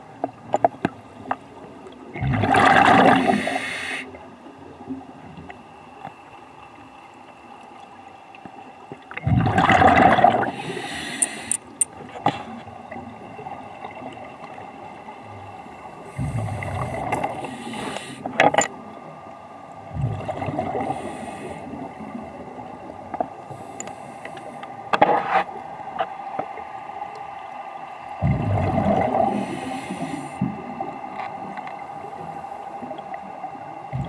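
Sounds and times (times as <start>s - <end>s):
exhaled bubbles underwater: 2.0s - 4.2s, 9.1s - 10.9s, 19.8s - 23.0s, 28.2s - 31.6s, 32.8s - 34.0s.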